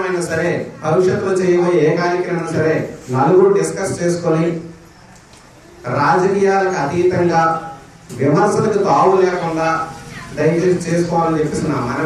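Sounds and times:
man speaking into a microphone: 0.0 - 4.8, 5.8 - 12.0.

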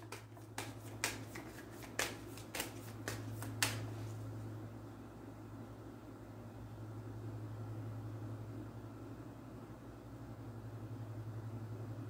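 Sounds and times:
cards being shuffled: 0.0 - 4.2
steady low hum: 0.0 - 12.0.

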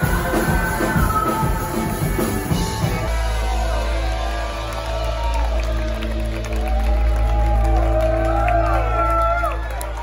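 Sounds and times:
crowd cheering: 2.4 - 10.0.

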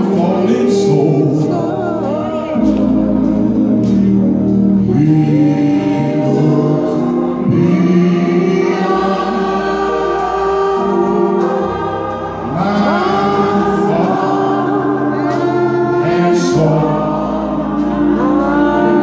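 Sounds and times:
group gospel singing: 0.0 - 19.0
low accompaniment: 0.0 - 19.0.

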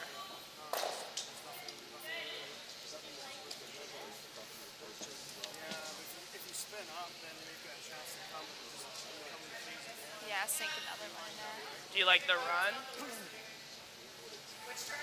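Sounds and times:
indistinct quiet talking: 0.0 - 15.0.

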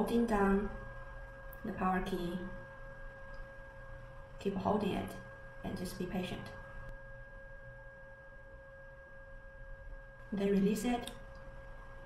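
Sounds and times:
low background rumble: 0.0 - 12.0
steady two-tone whine: 0.0 - 12.0.

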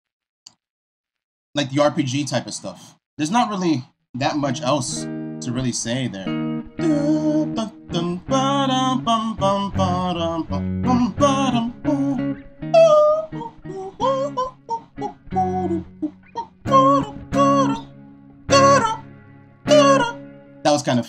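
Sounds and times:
electric guitar phrases: 4.2 - 21.0
man vocalising a melody: 6.8 - 17.9, 18.5 - 19.0, 19.7 - 20.2.

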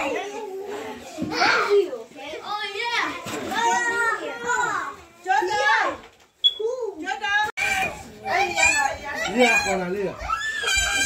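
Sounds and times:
children playing and calling out: 0.0 - 11.0.

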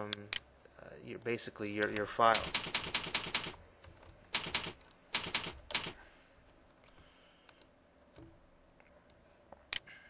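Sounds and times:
typing on computer keyboard: 2.3 - 3.6, 4.3 - 6.0.

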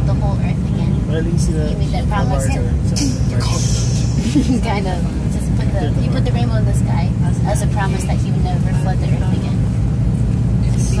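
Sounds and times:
road noise: 0.0 - 11.0
vehicle engine rumble: 0.0 - 11.0.

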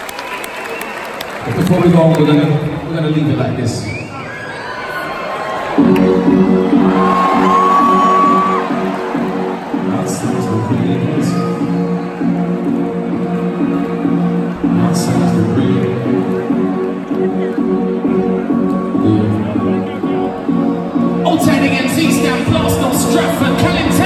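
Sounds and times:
audience whooping and cheering: 0.0 - 1.9, 3.8 - 14.0.

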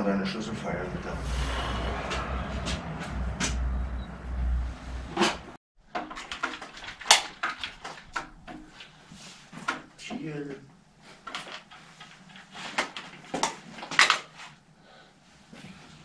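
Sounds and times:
low rumble: 0.3 - 5.6.

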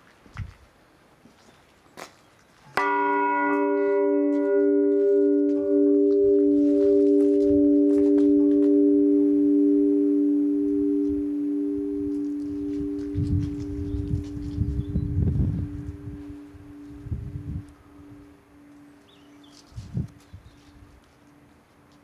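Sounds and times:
church bell ringing: 2.8 - 19.6.

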